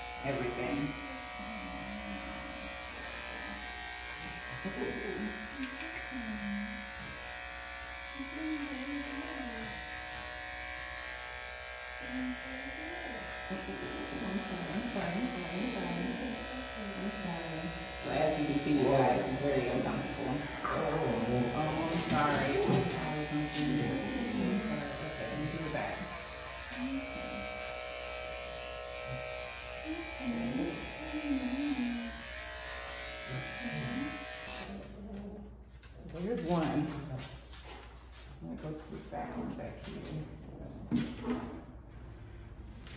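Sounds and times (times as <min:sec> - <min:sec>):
electric clippers humming: 0:00.0 - 0:35.0.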